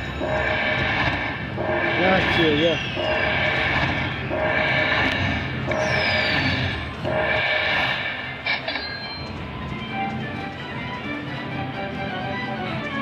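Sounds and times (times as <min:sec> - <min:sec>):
slot machine chiming phrase: 0:01.6 - 0:04.5.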